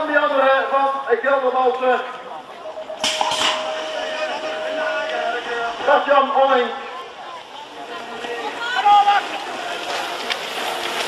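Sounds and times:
electronic start tone: 2.5 - 6.0
start gate slamming clang: 3.0 - 5.3.

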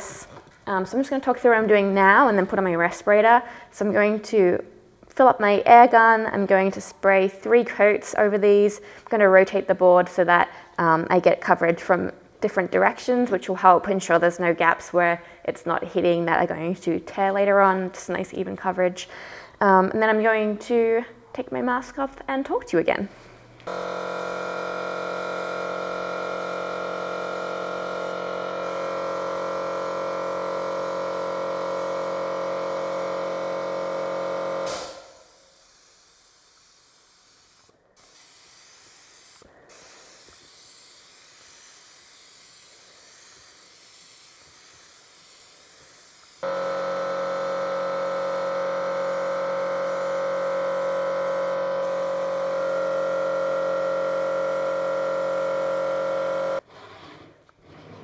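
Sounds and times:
air compressor motor hum: 23.5 - 56.7
spray gun hissing: 23.9 - 31.4, 34.6 - 46.4.

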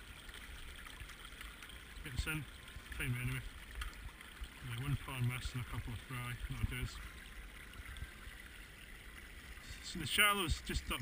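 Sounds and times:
stream trickling over stones: 0.0 - 11.0.

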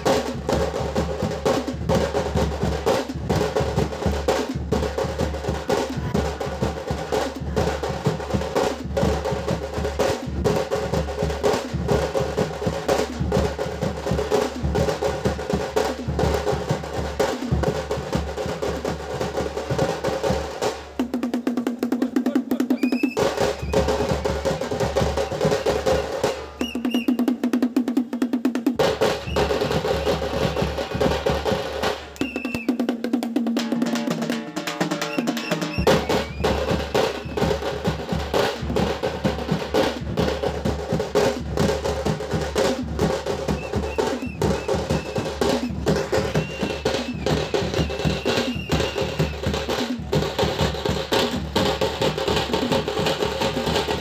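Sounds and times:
rapid drum roll: 0.0 - 54.0
street drum band playing: 0.0 - 54.0.

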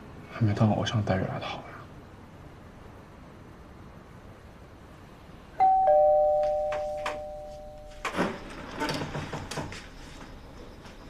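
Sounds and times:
two-tone doorbell chime: 5.6 - 8.2.

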